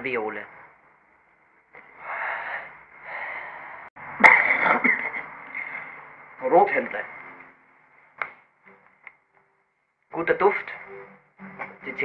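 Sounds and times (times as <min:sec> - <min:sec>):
man breathing deeply wheezing: 0:01.9 - 0:03.9.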